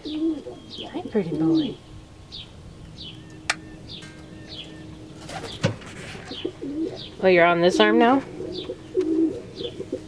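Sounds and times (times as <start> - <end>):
small bird chirping: 0.0 - 7.4
pigeons cooing: 0.0 - 10.0.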